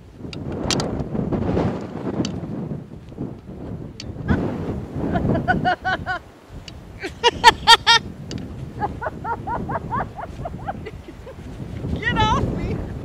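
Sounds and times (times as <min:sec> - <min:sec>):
wind buffeting microphone: 0:00.0 - 0:13.0.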